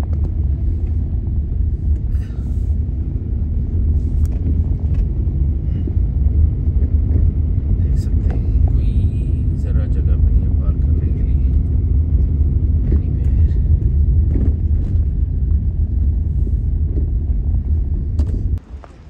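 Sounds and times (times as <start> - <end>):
engine and tyre rumble on wet road: 0.0 - 19.0.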